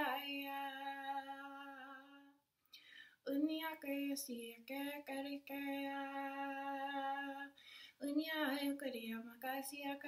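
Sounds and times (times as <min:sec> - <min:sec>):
woman chanting: 0:00.0 - 0:02.4.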